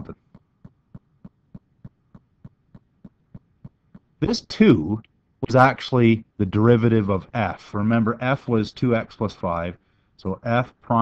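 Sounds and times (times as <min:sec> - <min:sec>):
faint regular ticking: 0:00.0 - 0:05.6.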